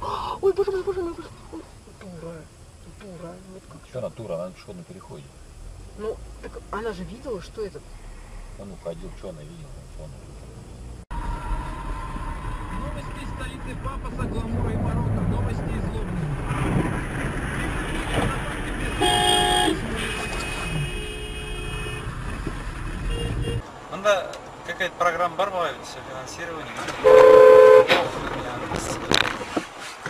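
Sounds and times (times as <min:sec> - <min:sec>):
road traffic noise: 0:00.0 - 0:30.0
car horn honk: 0:18.9 - 0:22.3, 0:23.0 - 0:23.6, 0:27.0 - 0:28.0.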